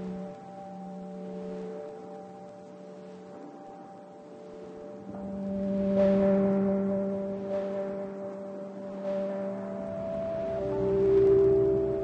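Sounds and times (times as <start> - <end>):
ambient bell-like drone: 0.0 - 12.0.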